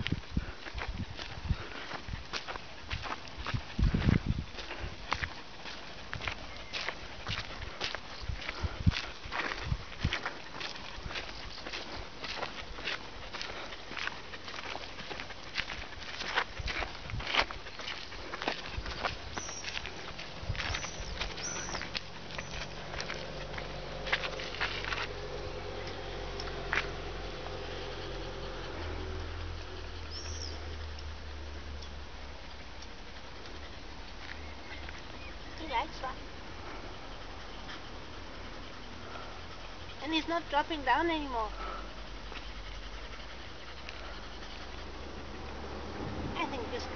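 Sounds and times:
dog footsteps on dirt: 0.0s - 37.3s.

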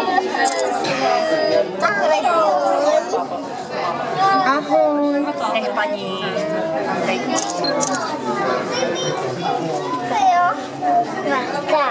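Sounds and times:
people chattering: 0.0s - 11.9s.

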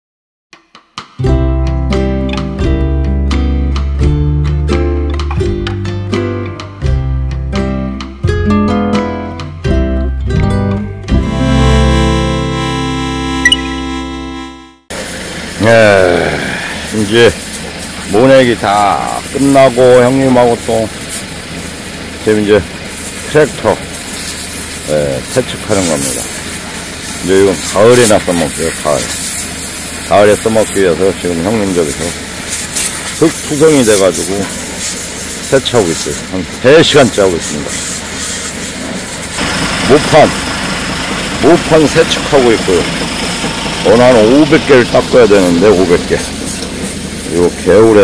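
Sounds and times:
intro jingle: 10.4s - 14.8s
machine hum: 11.1s - 19.5s, 37.8s - 47.4s
engine hum with high whine: 11.2s - 48.0s
water spraying from hose: 14.9s - 48.0s
man speaking: 15.6s - 17.4s, 18.1s - 20.9s, 22.3s - 22.7s, 23.3s - 23.8s, 24.9s - 26.2s, 27.2s - 29.1s, 30.1s - 32.2s, 33.2s - 34.5s, 35.5s - 37.8s, 39.9s - 40.4s, 41.4s - 42.9s, 43.8s - 46.3s, 47.3s - 48.0s.

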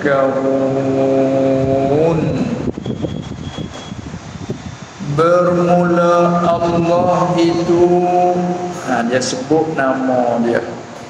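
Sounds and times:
low rumble with hiss: 0.0s - 3.2s, 4.4s - 11.0s
thin high whine: 0.0s - 11.0s.

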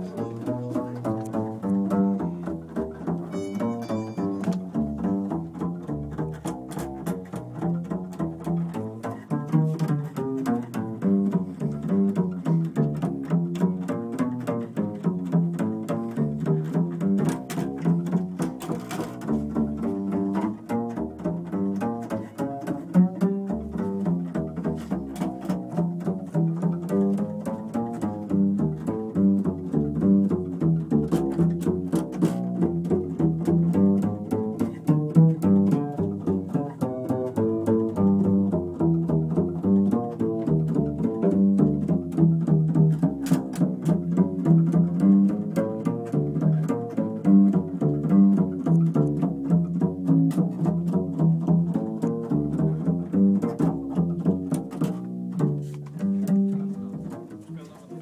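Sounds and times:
jazz band playing: 0.0s - 57.8s
plucked double bass: 0.0s - 58.0s.

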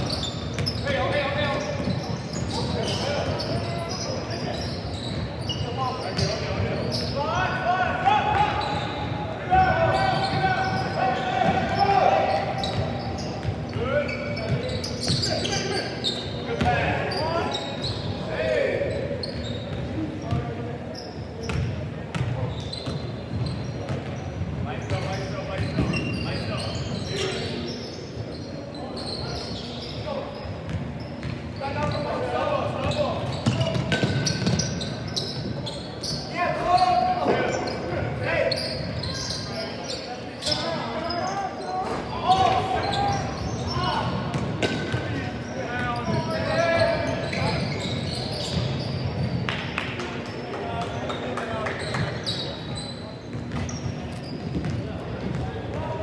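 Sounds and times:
players calling out: 0.1s - 21.0s.

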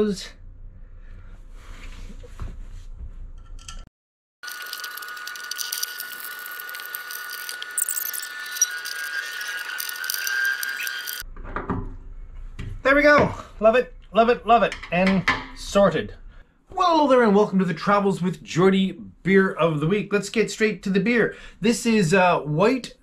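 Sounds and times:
screws and metal plate clicking: 4.4s - 11.2s
high-pitched sped-up whine: 4.5s - 11.2s.

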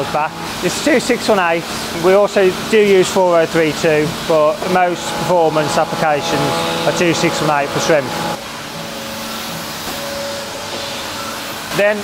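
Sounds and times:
workshop machinery hiss and hum: 0.0s - 12.0s.

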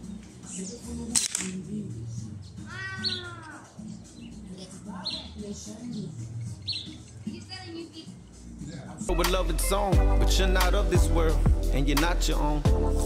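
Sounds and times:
slingshot crack: 1.1s - 1.6s
bird chirps: 6.0s - 7.1s.

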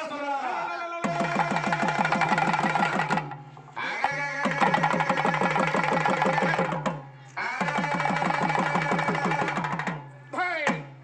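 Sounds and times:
barrel drum and frame drum beating: 1.0s - 11.0s.

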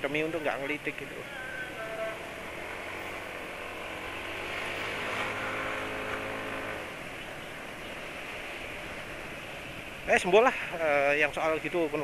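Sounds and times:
wind and road noise: 0.0s - 12.0s
scooter engine hum: 0.1s - 10.8s.

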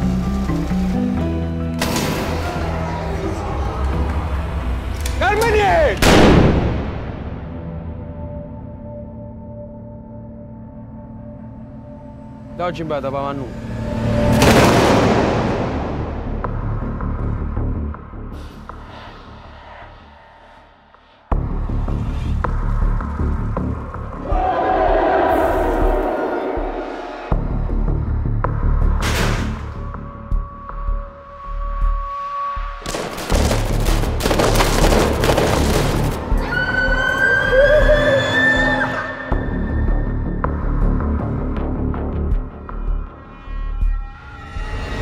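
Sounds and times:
loud pistol shot: 6.0s - 6.9s
music with low pulse: 6.0s - 36.6s, 39.3s - 45.0s
crowd of men shouting and cheering: 24.3s - 27.3s.

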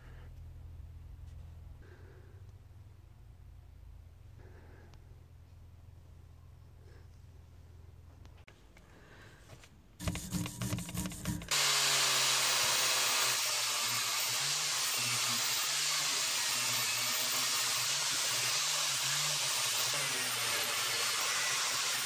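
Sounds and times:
motor hum: 10.0s - 17.3s
angle grinder grinding metal: 10.0s - 22.0s.

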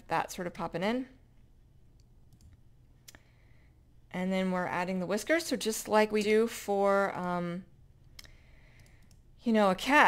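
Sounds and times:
faint clicks: 8.1s - 9.2s.

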